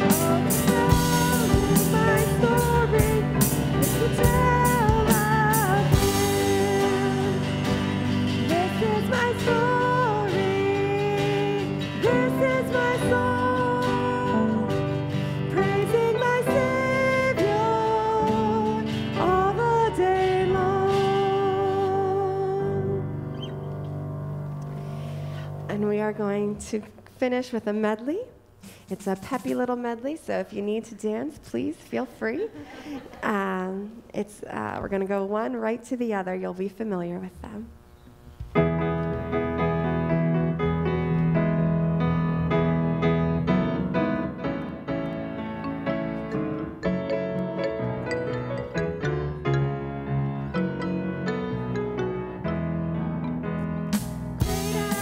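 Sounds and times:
woman singing: 0:00.0 - 0:23.1, 0:54.4 - 0:55.0
worship band with guitar and keyboard: 0:00.0 - 0:25.7, 0:50.1 - 0:55.0
woman speaking: 0:25.7 - 0:37.7, 0:54.6 - 0:55.0.

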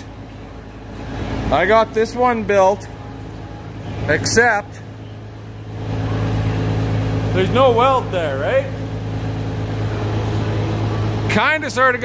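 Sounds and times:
machine humming: 0:00.0 - 0:12.0.

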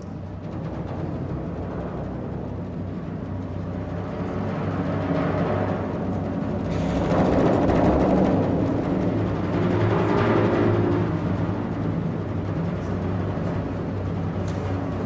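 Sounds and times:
sustained low tones: 0:00.0 - 0:15.0.

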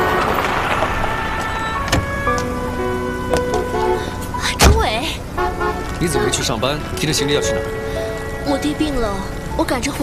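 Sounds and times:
car door slam: 0:04.6 - 0:05.0.

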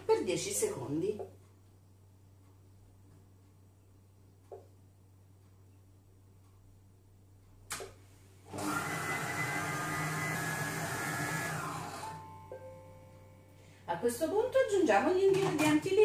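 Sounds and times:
food processor running: 0:08.5 - 0:12.2.

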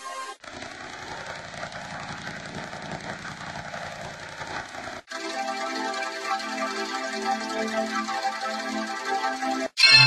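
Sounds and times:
harsh distorted noise: 0:00.4 - 0:05.1.

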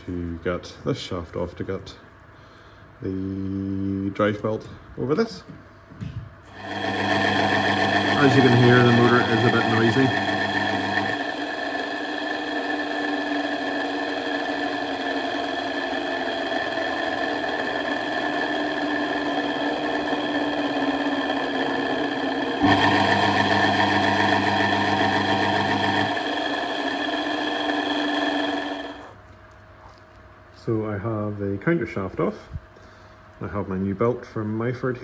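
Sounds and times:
lathe motor humming: 0:06.5 - 0:29.1.

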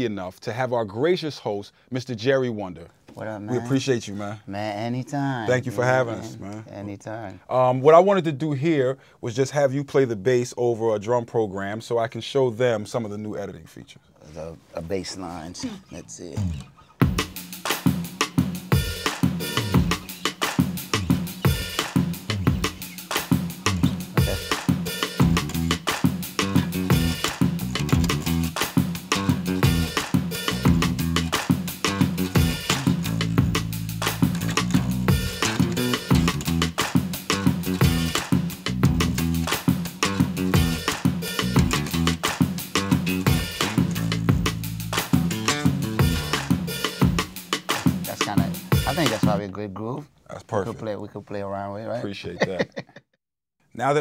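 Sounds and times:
electric bass guitar: 0:15.7 - 0:17.2, 0:20.8 - 0:46.8
kick and snare drum beat: 0:17.0 - 0:49.4.

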